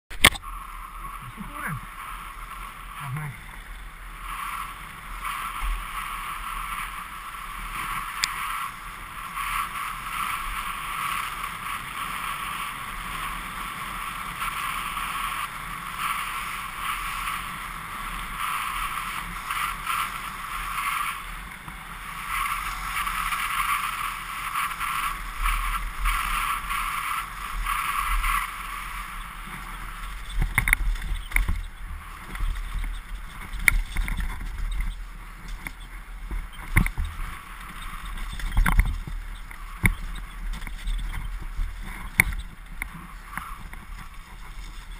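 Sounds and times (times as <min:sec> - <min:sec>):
bike tyres rolling on gravel: 0:00.1 - 0:44.9
bike knocks on bumpy trail: 0:30.2 - 0:44.6.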